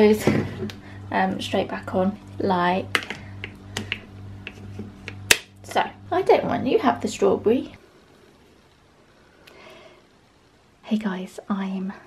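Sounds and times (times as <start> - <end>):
faint clicks and taps: 2.9 - 5.2
plastic lid clicking onto cup: 3.0 - 5.5.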